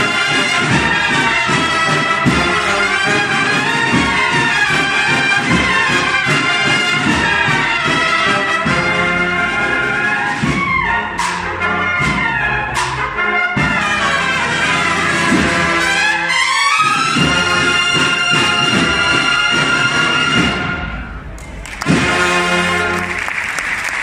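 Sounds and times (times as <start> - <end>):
drum strokes: 0.0 - 16.3, 16.9 - 22.9
bugle and drum band playing march: 0.0 - 23.5.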